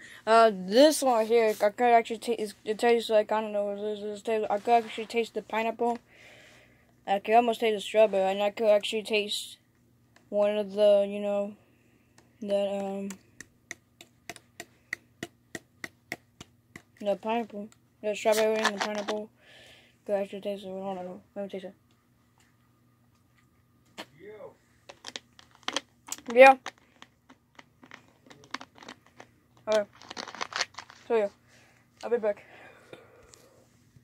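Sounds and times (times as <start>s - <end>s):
plastic bottle crinkling: 18.3s - 19.2s, 24.9s - 31.1s.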